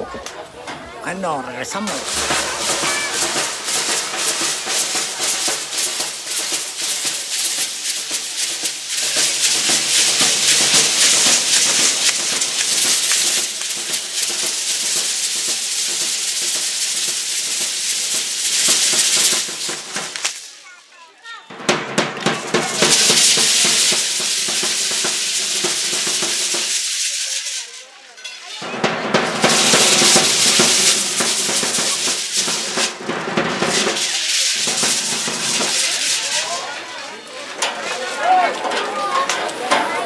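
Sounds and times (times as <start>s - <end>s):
hand rattles shaking: 1.8s - 20.5s, 22.2s - 27.6s, 29.4s - 33.0s, 33.6s - 36.7s.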